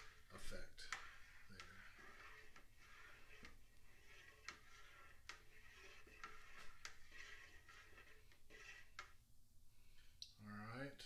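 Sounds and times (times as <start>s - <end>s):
plastic spoon stirring in bucket: 0.0s - 9.2s.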